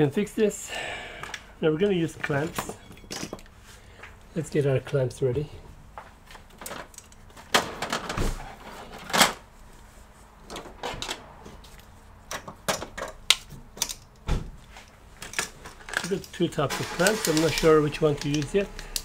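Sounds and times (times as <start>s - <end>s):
plastic clamps clicking and rattling: 15.2s - 19.0s.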